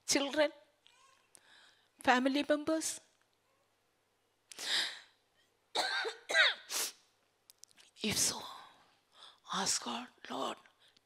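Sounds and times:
woman coughing: 0:05.8 - 0:06.7.

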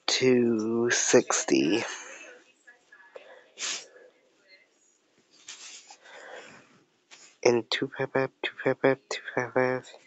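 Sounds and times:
person breathing close to microphone: 0:05.5 - 0:07.4.

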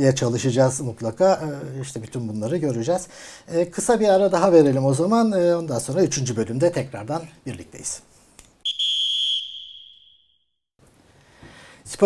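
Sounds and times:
high steady whistle tone: 0:08.6 - 0:10.6.

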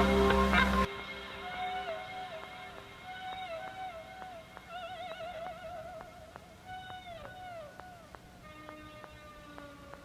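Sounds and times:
faint regular ticks: 0:03.1 - 0:10.0.

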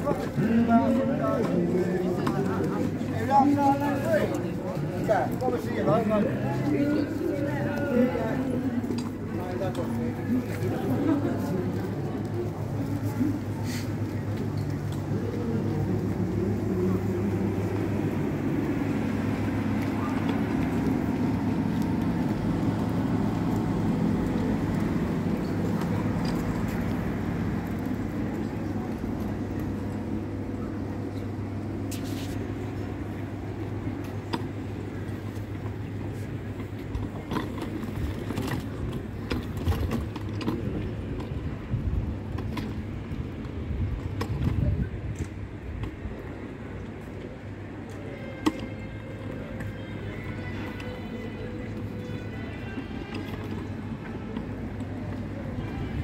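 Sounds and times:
low traffic rumble: 0:00.0 - 0:56.0
people's voices: 0:00.0 - 0:56.0
road vehicle engine hum: 0:00.0 - 0:56.0.

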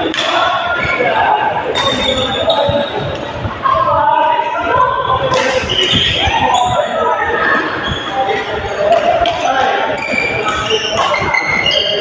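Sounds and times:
voices in background: 0:00.0 - 0:12.0
racket hitting shuttlecock: 0:00.1 - 0:00.4.

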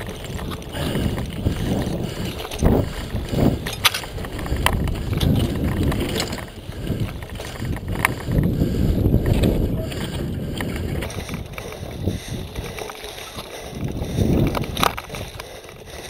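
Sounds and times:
bike clicks and rattles: 0:00.0 - 0:16.0
bike tyre noise: 0:00.0 - 0:16.0
wind rumble on microphone: 0:00.0 - 0:16.0.

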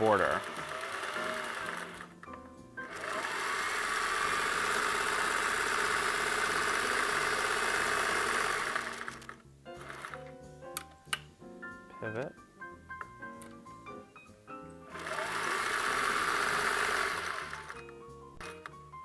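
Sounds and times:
sewing machine running: 0:00.0 - 0:02.2, 0:02.9 - 0:10.2, 0:14.9 - 0:17.8.

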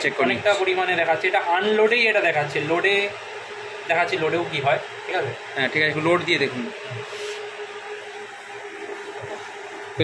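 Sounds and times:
cooling fans whirring: 0:00.0 - 0:10.0.

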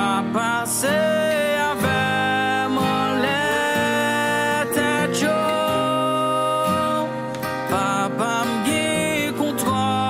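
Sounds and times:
acoustic guitar strumming: 0:00.0 - 0:10.0
keyboard: 0:00.0 - 0:10.0
man singing: 0:00.0 - 0:10.0
electric violin: 0:02.0 - 0:09.2.

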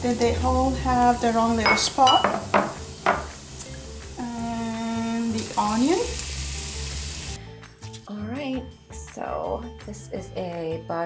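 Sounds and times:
background music with singing: 0:00.0 - 0:06.1, 0:06.7 - 0:11.0
vegetables sizzling in a pot: 0:00.0 - 0:07.4.

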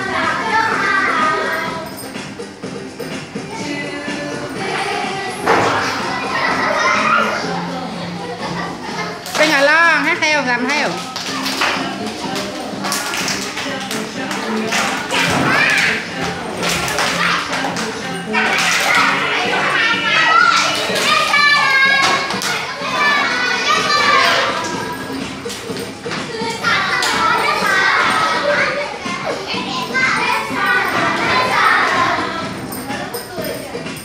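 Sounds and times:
children shouting and singing: 0:00.0 - 0:34.0
children's dance song: 0:00.0 - 0:34.0.

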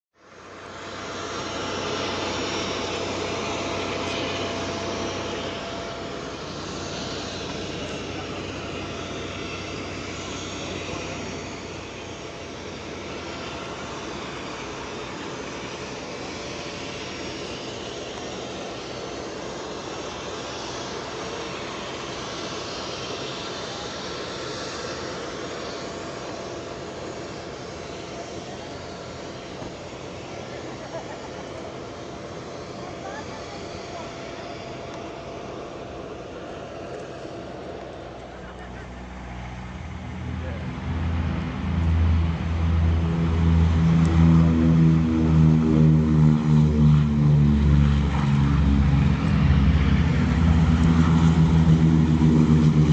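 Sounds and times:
propeller aircraft engines running: 0:00.2 - 0:52.9.

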